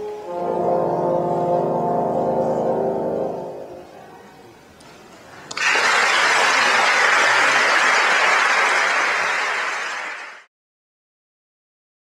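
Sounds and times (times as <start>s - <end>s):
audience applauding: 5.5s - 10.5s.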